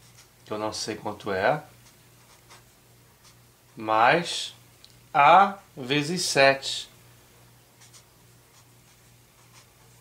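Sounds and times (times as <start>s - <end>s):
pen scratching on paper: 1.8s - 3.4s, 7.8s - 10.0s.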